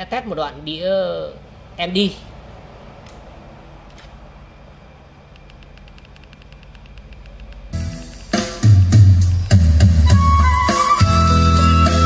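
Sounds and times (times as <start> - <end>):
song with drums and heavy bass: 7.8 - 12.0.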